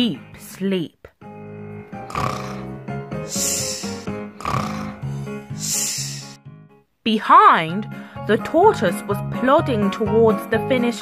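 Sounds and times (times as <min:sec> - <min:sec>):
light background music: 0:00.0 - 0:11.0
cartoon snoring: 0:01.5 - 0:06.4
long hissing breath out: 0:02.1 - 0:06.4.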